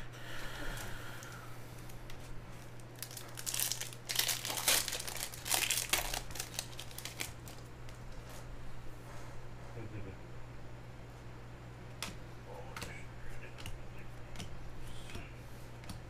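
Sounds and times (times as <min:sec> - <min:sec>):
foil wrapper crinkling: 0:01.2 - 0:08.0.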